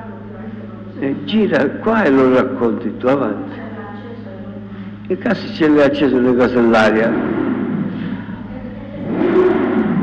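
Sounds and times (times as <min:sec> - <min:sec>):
steady low hum: 0:00.0 - 0:10.0
motor engine revving: 0:05.7 - 0:10.0.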